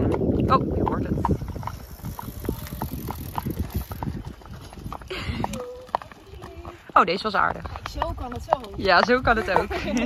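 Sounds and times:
horse hooves on pavement: 0.0 - 10.0.

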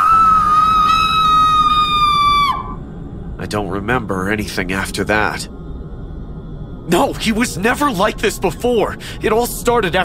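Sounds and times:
woman screaming shrilly: 0.0 - 2.7.

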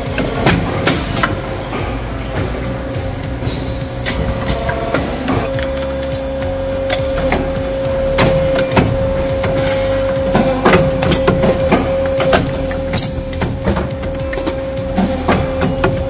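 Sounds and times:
factory machines humming: 0.0 - 16.0
tube-bending machine clacks: 0.0 - 16.0.

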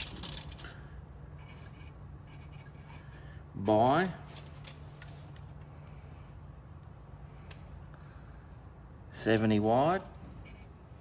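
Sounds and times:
tape measure clicks and rattles: 0.0 - 0.7
low steady hum: 0.0 - 11.0
marker scratching on metal plate: 1.3 - 3.3.

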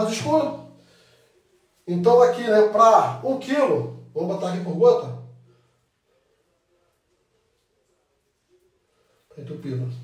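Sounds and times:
man's voice: 0.0 - 0.7, 1.9 - 5.3.

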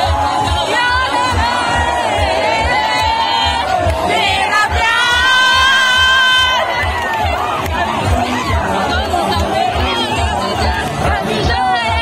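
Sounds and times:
crowd cheering and shouting: 0.0 - 12.0
loud amplified music with bass beat: 0.0 - 12.0.

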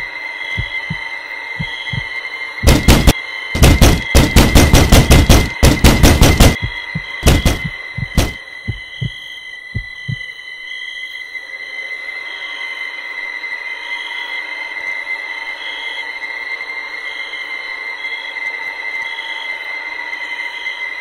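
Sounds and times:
high-pitched ringing tone: 0.0 - 4.2, 6.5 - 21.0
low heartbeat thumps: 0.6 - 1.0, 1.6 - 9.2, 9.8 - 10.2.

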